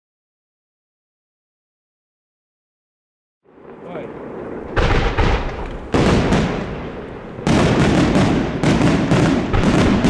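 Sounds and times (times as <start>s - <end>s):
fireworks bursting: 3.5s - 10.0s
fireworks crackling: 3.5s - 10.0s.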